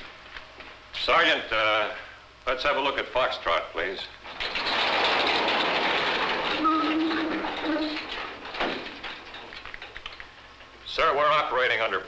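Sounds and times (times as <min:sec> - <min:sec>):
motorized panel rattling and rushing: 0:04.2 - 0:10.7.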